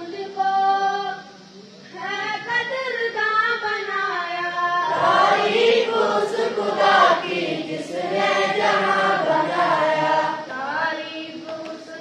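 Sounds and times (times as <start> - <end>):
boys chanting a prayer in unison: 2.1 - 12.0.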